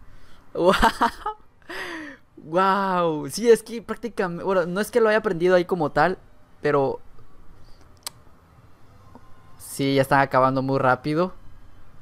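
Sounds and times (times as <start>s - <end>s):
faint low room noise: 0.0s - 12.0s.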